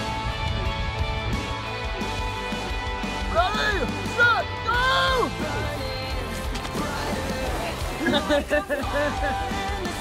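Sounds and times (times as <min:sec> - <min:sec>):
background music: 0:00.0 - 0:10.0
person yelling: 0:03.3 - 0:05.4.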